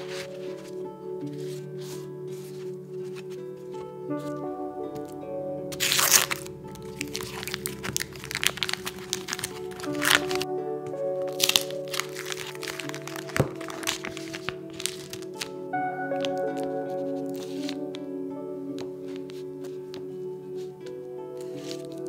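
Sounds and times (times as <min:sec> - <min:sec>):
background music: 0:00.0 - 0:22.0
cheese wrappers crinkling: 0:05.0 - 0:22.0.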